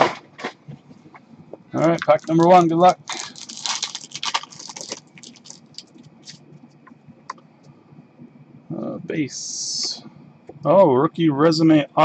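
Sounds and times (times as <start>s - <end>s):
wrapper tearing and crinkling: 1.8s - 6.4s.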